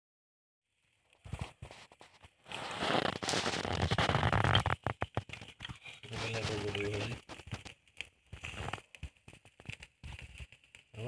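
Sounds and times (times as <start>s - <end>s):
fat crackling on charcoal: 0.7s - 11.0s.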